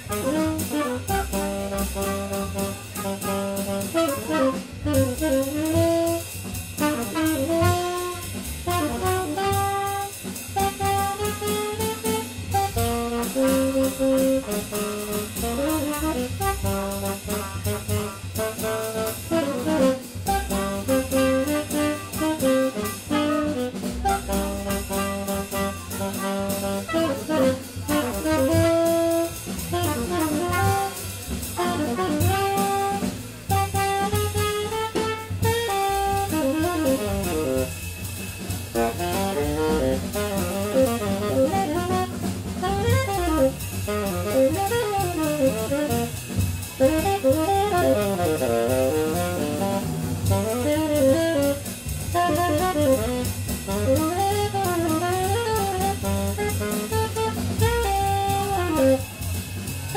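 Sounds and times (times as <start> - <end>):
tenor saxophone: 0.0 - 37.9, 38.6 - 59.2
drum kit: 0.0 - 59.9
trumpet: 0.0 - 59.9
walking double bass: 0.0 - 59.9.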